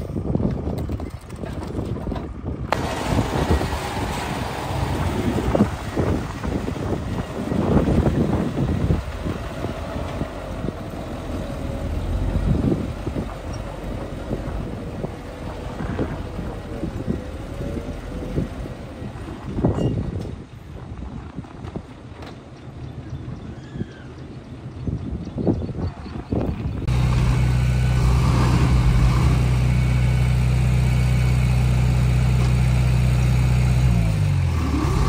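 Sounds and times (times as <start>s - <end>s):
truck engine running: 0.0s - 23.4s, 26.1s - 35.0s.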